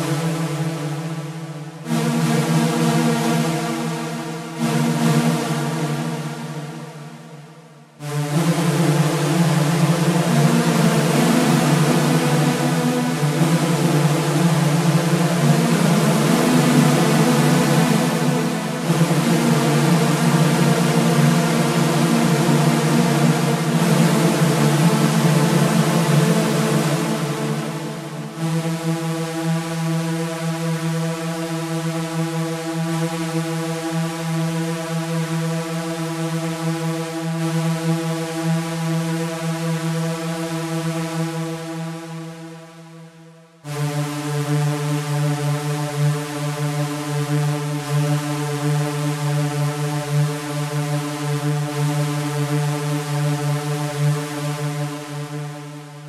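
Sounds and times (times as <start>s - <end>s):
low electronic drone: 0.0s - 42.6s, 43.6s - 56.0s.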